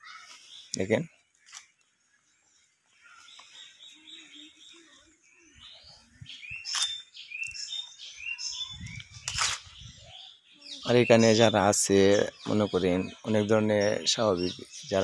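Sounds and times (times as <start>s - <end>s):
birds chirping: 0.0s - 15.0s.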